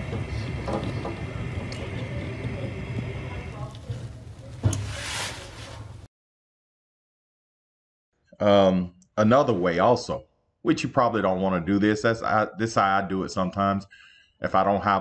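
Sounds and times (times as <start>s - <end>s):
gas fireplace flame rushing: 0.0s - 6.1s
brief hiss: 4.6s - 5.9s.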